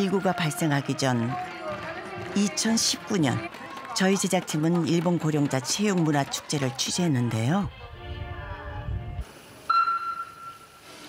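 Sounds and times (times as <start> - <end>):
pool hall hiss: 9.2 - 11.0
electronic start beep: 9.7 - 10.8.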